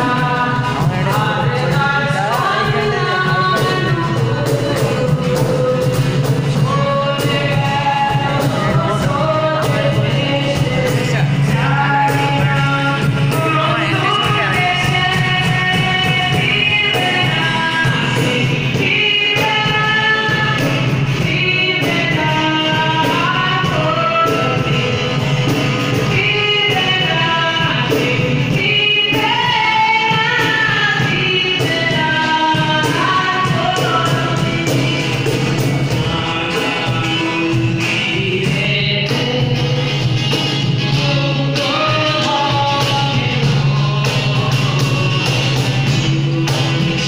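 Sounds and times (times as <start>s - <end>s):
cajon beat: 0.0s - 47.0s
man singing through microphone: 0.0s - 47.0s
strummed acoustic guitar: 0.0s - 47.0s.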